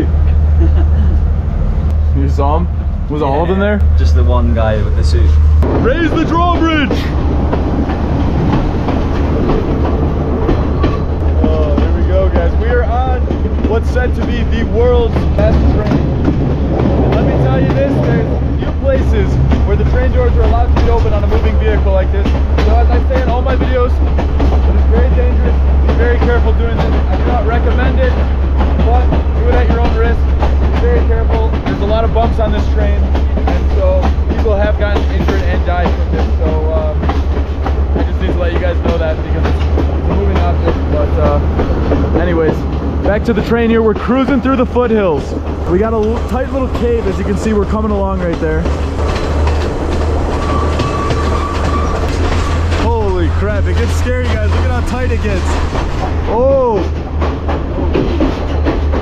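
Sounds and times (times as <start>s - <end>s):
train low rumble: 0.0s - 59.0s
wheels clacking over rail joints: 3.8s - 59.0s.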